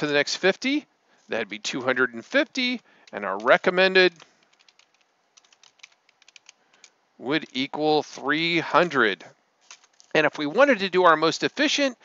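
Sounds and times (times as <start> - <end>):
keyboard typing: 4.2 - 7.6.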